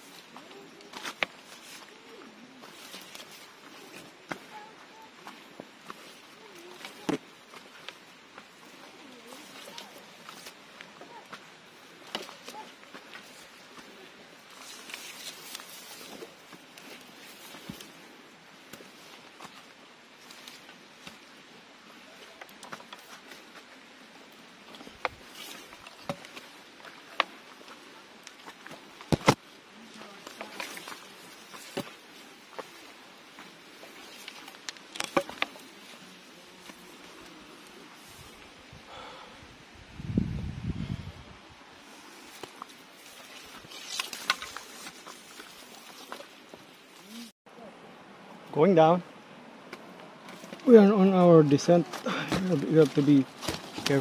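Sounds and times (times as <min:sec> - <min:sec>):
footsteps brushing through undergrowth: 0:00.0 - 0:21.4, 0:22.2 - 0:38.6, 0:41.7 - 0:47.3, 0:50.2 - 0:54.0
insect hum: 0:00.0 - 0:50.7.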